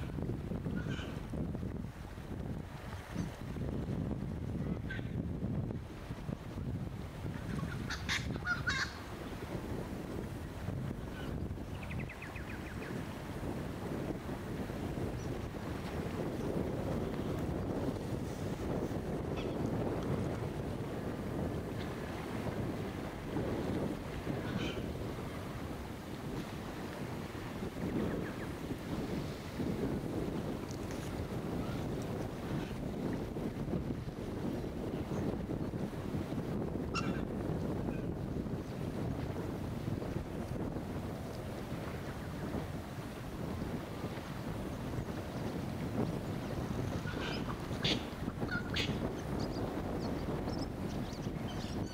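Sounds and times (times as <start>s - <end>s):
waves lapping on sand: 0.0s - 4.8s, 5.7s - 51.0s
wind buffeting microphone: 0.0s - 51.9s.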